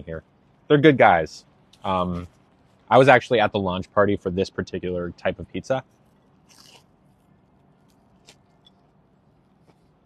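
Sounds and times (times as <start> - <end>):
quiet chewing: 6.0 - 10.0
biting into food: 6.5 - 6.8.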